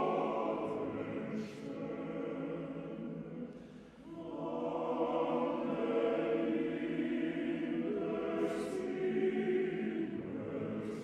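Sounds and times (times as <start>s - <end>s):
male choir singing: 0.0s - 3.5s, 4.1s - 11.0s.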